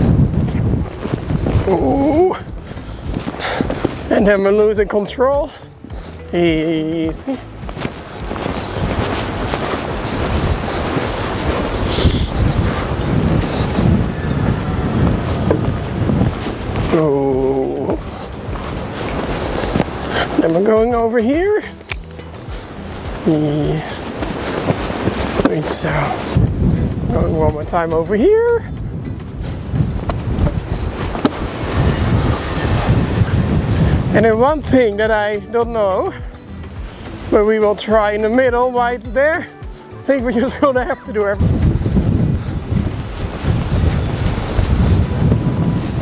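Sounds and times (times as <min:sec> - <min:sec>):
horse hoofbeats on sand: 0:00.0 - 0:46.0
wind buffeting microphone: 0:00.0 - 0:46.0.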